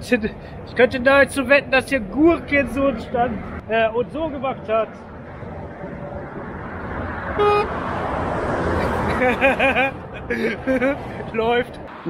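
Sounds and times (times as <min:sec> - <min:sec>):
motorway traffic: 0:00.0 - 0:12.0
vehicle horn toot: 0:07.4 - 0:07.9
man laughing: 0:08.7 - 0:11.4.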